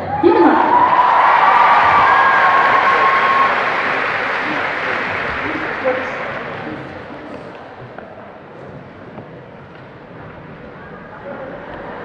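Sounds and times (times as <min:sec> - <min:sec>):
audience applauding and cheering: 0:00.0 - 0:07.1.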